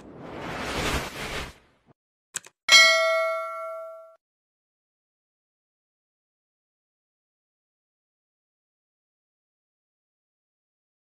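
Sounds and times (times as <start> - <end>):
bright bell ding: 2.7 - 4.2.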